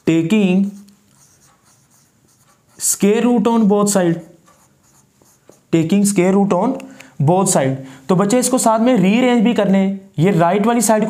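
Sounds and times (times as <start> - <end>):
marker writing on whiteboard: 0.0 - 5.9
person speaking: 0.0 - 11.0.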